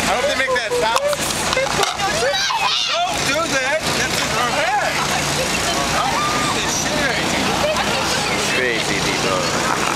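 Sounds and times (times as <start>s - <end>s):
indistinct voices talking: 0.0s - 9.9s
traffic noise: 0.0s - 9.9s.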